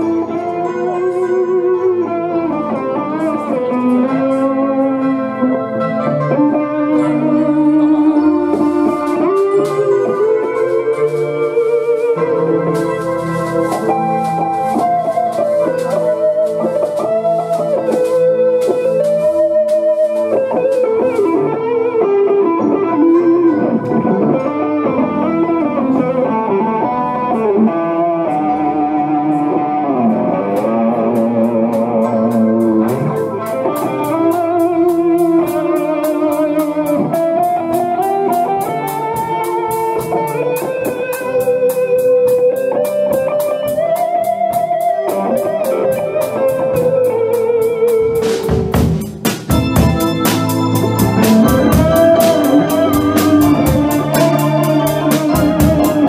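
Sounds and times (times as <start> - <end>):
electric guitar lead: 0.0 - 56.0
keyboard: 0.0 - 56.0
drum kit steady beat: 6.5 - 24.1, 29.7 - 56.0.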